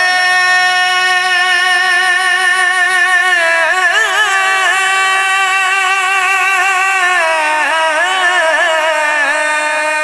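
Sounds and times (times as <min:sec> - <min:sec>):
man singing long note: 0:00.0 - 0:10.0.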